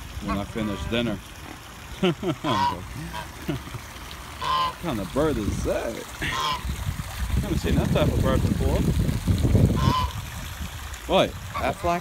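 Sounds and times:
water running into pond: 0.0 - 12.0
goose honking: 0.2 - 1.1, 2.5 - 3.3, 4.4 - 4.8, 6.2 - 6.7, 9.8 - 10.2, 11.5 - 12.0.

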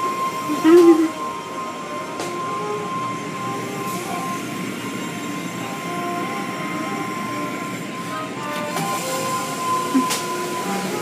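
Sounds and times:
car wash machinery rushing: 0.0 - 11.0
high-pitched whine: 0.0 - 11.0.

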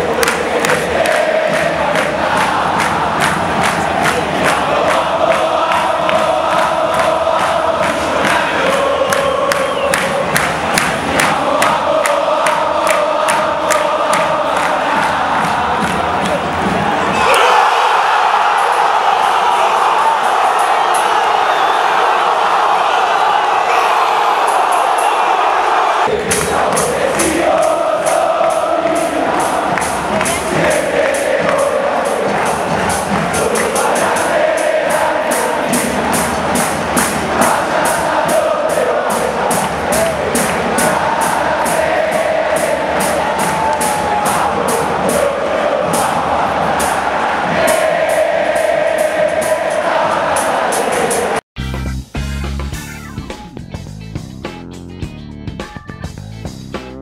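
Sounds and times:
crowd clapping in rhythm: 0.0 - 17.4, 18.1 - 51.4
football crowd chanting: 0.0 - 51.4
rhythmic drum beat: 0.0 - 57.0.

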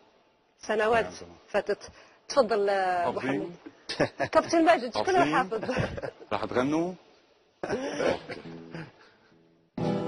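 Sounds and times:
acoustic guitar notes: 7.8 - 10.0
acoustic guitar strummed chord: 9.8 - 10.0.

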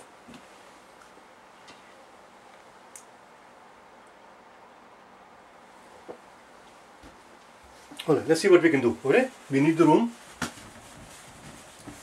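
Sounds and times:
faint hiss and low hum: 0.0 - 12.0.

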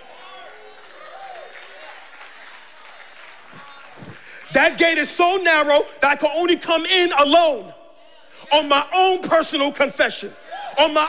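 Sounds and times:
congregation applauding: 0.0 - 5.8.

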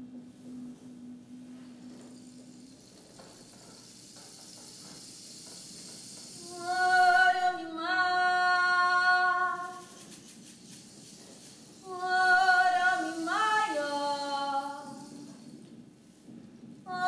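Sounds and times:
woman singing without words: 6.4 - 9.8, 11.8 - 15.2.

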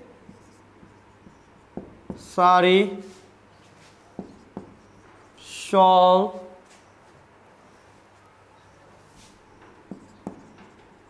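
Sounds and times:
marker writing on whiteboard: 0.0 - 5.8, 9.0 - 11.0
marker tapping: 0.1 - 2.4, 4.1 - 5.4, 9.5 - 11.0.

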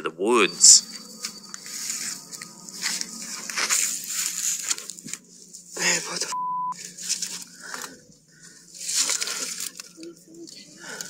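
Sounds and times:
footsteps crunching through undergrowth: 0.8 - 5.8, 6.8 - 8.0
grass and brush rustling: 0.8 - 11.0.

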